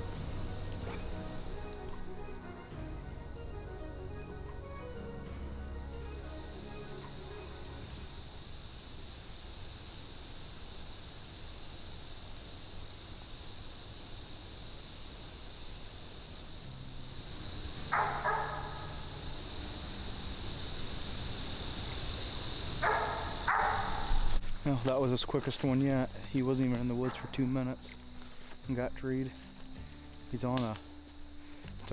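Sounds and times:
dog barking: 0.8s - 1.4s, 17.9s - 18.9s, 22.8s - 24.1s, 27.0s - 27.4s.

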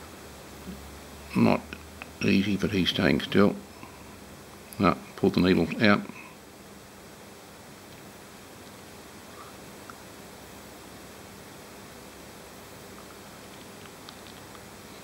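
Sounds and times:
room tone hiss: 0.0s - 15.0s
faint small ticks: 12.9s - 14.7s.

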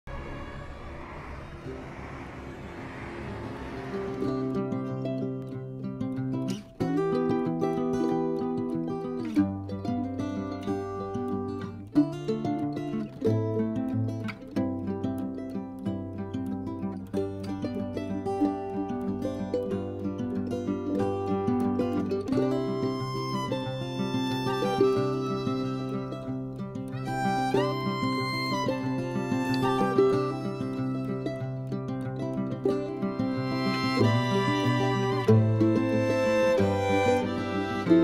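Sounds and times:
hiss-like noise: 0.1s - 7.1s, 20.9s - 38.0s
plucked string music: 4.2s - 38.0s.

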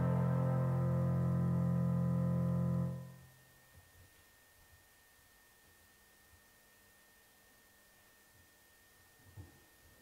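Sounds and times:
keyboard sustained chord: 0.0s - 3.3s.

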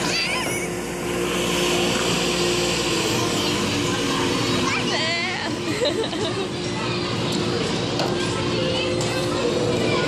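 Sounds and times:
background chatter: 0.0s - 10.0s
children playing: 0.0s - 10.0s
steady hum: 0.0s - 10.0s.

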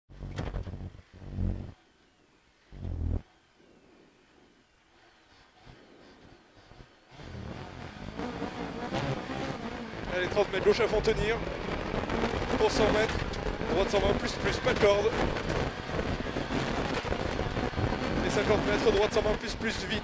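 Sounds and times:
rally car engine revving and idling: 5.4s - 20.0s.

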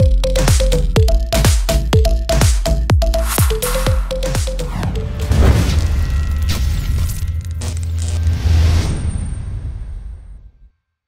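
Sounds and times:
crackling electric zaps: 7.4s - 8.5s.

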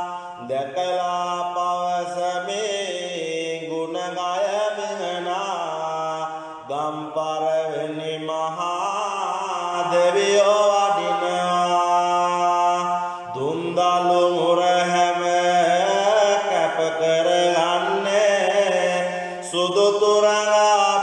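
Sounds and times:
solo voice chanting: 0.0s - 21.0s.

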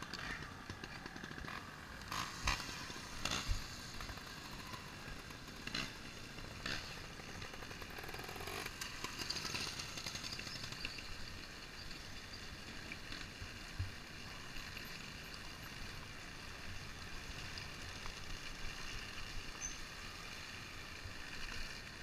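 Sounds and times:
motorcycle engine: 0.0s - 22.0s.

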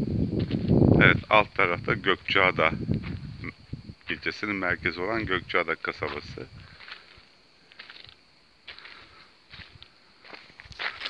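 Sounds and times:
footsteps on gravel: 0.4s - 3.4s, 5.9s - 11.0s.

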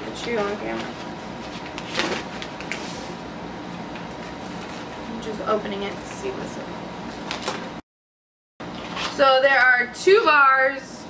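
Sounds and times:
cardboard package being opened: 7.1s - 7.6s.

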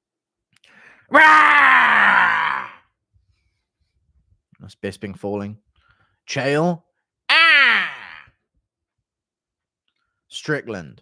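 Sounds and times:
man yelling ahh sliding down: 7.3s - 8.2s.

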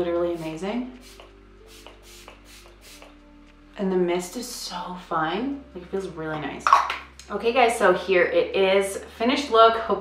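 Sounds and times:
spray bottle hissing pumps: 0.4s - 3.2s.

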